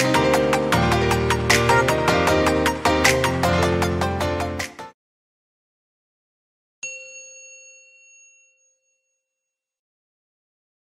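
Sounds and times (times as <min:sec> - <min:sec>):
bright bell-like chime: 0:06.8 - 0:09.8.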